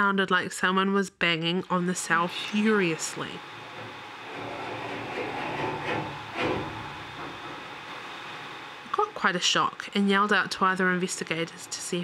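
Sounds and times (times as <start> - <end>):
banging and rattling on door: 3.7 - 7.8.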